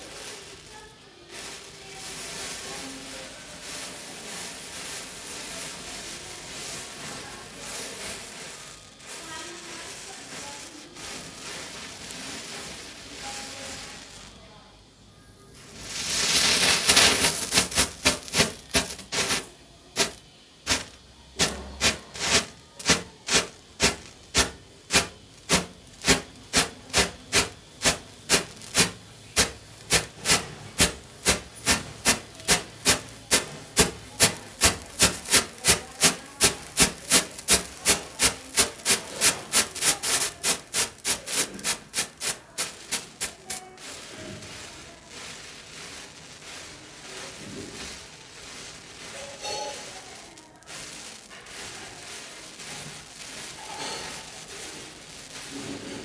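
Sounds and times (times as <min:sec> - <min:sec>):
matches hissing and fizzing: 0:00.0 - 0:56.0.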